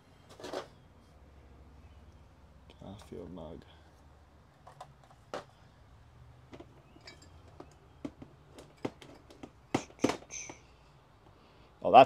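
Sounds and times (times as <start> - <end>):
glassy clink: 7.0 - 7.4.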